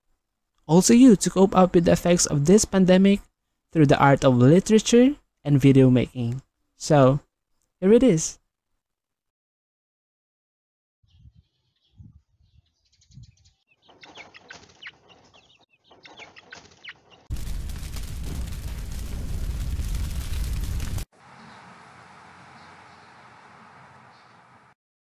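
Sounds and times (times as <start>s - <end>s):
small birds chirping: 11.1s - 17.3s, 21.3s - 24.7s
chicken clucking: 13.8s - 17.2s.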